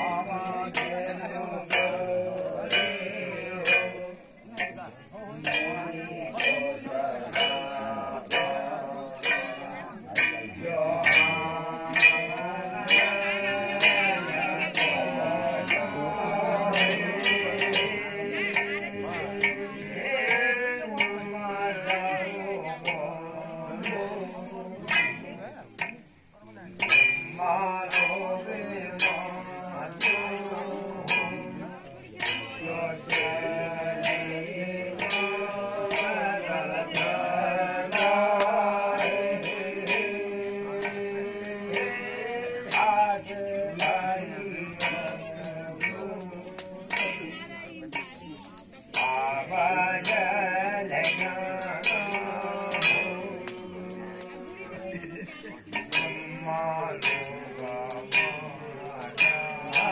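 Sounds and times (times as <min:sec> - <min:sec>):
man singing into a microphone: 0:00.0 - 0:25.4, 0:26.8 - 0:48.1, 0:48.9 - 0:59.9
struck percussion beat: 0:00.0 - 0:59.9.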